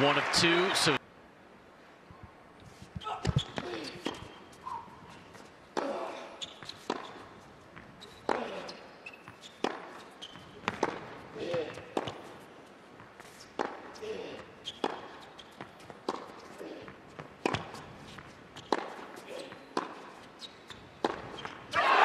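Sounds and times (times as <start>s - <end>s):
ball bouncing on court: 3.1s - 4.3s, 5.8s - 8.5s, 9.2s - 12.3s, 14.7s - 17.9s, 18.6s - 20.0s, 20.7s - 21.6s
racket hitting tennis ball: 6.6s - 8.6s, 9.2s - 20.2s, 21.0s - 21.6s.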